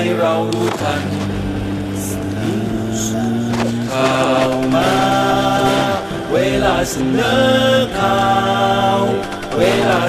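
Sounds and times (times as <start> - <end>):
voices singing in harmony: 0.0 - 10.0.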